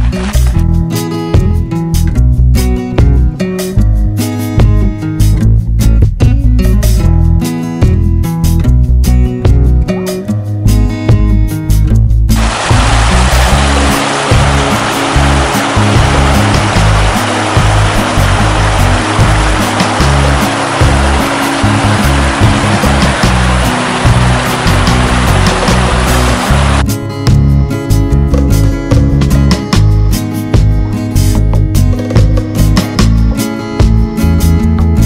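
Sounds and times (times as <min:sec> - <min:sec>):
background music: 0:00.0 - 0:35.0
river rushing over rapids: 0:12.4 - 0:26.8.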